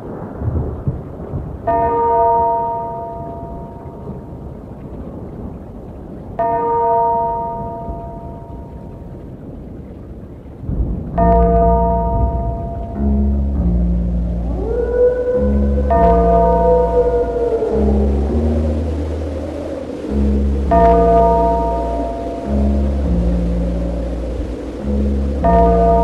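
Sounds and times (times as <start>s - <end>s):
tolling bell: 1.7s - 4.2s, 6.4s - 8.9s, 11.2s - 26.0s
low rushing noise: 10.7s - 26.0s
deep sustained bass note: 11.2s - 26.0s.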